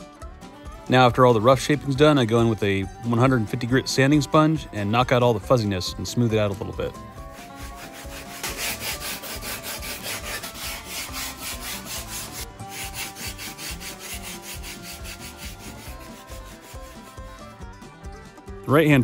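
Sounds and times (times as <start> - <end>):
sanding sponge scratching foam: 7.3 - 17.6.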